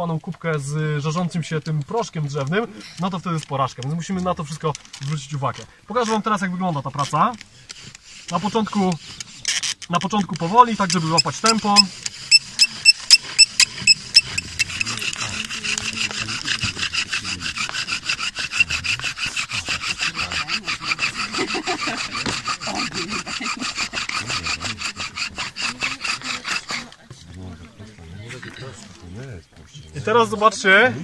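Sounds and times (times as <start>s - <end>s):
bow drill squeaky rubbing: 2.0s - 27.2s.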